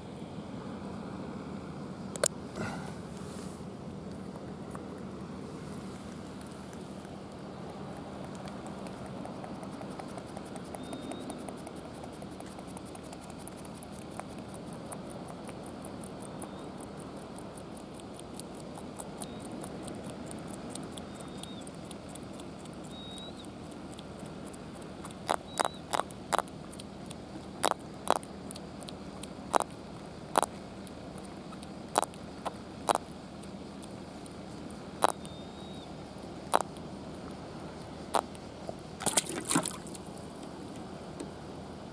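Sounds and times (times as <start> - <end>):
steady low hum: 0.0 - 41.9
pufferfish grinding teeth clicks: 6.7 - 29.8, 30.4 - 34.4, 35.0 - 35.3, 36.6 - 36.8.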